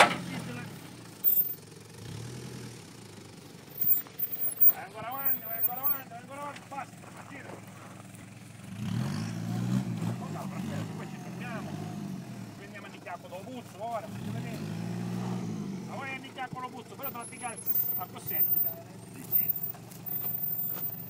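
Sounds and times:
engine revving under load: 0.0 - 5.6, 8.6 - 12.8, 14.0 - 16.3.

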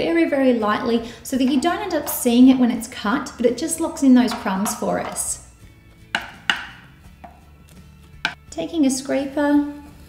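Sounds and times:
metal spatula tapping board: 1.3 - 2.7, 4.2 - 7.5, 8.2 - 8.4.

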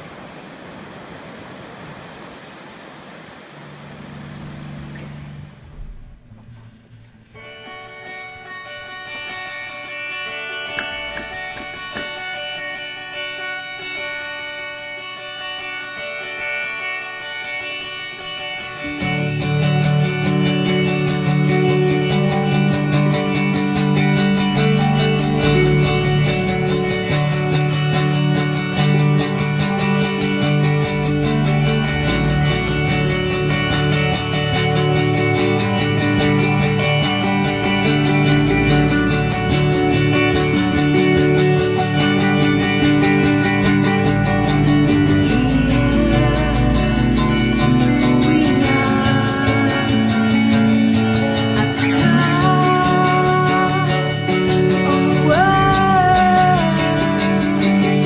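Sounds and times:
ocean surf on beach: 0.0 - 4.9
electric guitar chords: 3.4 - 58.0
low note: 3.6 - 7.7, 29.8 - 50.4
bass and drums: 19.0 - 52.7.

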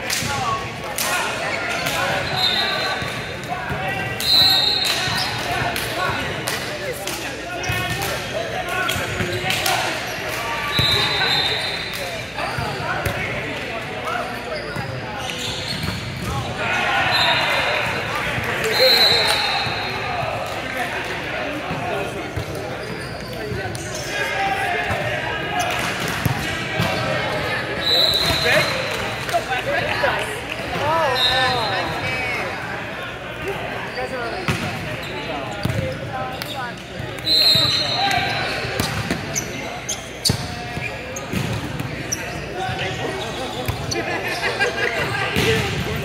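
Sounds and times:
voices talking and calling out: 0.0 - 46.0
ball bouncing on court: 34.5 - 34.8, 35.6 - 36.6, 40.2 - 42.0.

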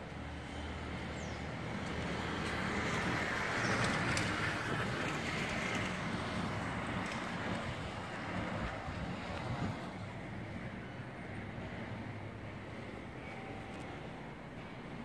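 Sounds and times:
road traffic noise: 0.0 - 15.0.

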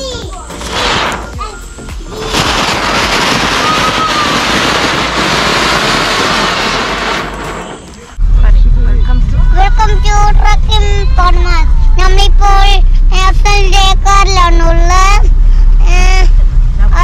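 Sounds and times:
loud rushing noise: 0.6 - 1.4, 2.0 - 9.0
deep steady rumble: 1.8 - 17.0
child singing: 9.4 - 15.2.

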